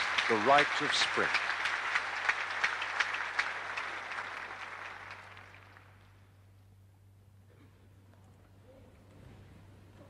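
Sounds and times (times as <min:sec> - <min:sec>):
audience applauding: 0:00.0 - 0:06.3
low recording hum: 0:00.0 - 0:10.0.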